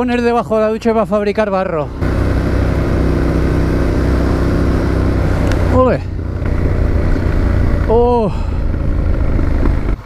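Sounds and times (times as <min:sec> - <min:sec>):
motorcycle engine cruising: 0:00.0 - 0:10.0
wind rush: 0:03.9 - 0:10.0.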